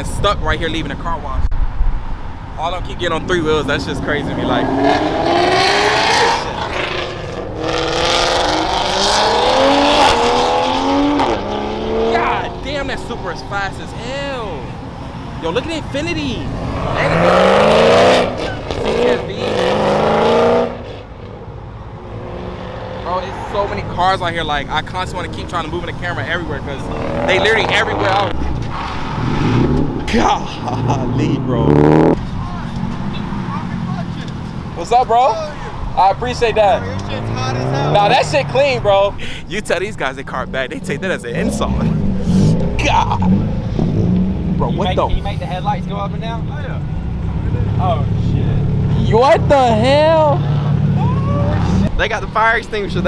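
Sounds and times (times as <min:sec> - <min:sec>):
cars driving slowly past: 0:00.0 - 0:53.0
car accelerating hard past: 0:03.7 - 0:13.1, 0:16.5 - 0:21.1, 0:26.8 - 0:30.1.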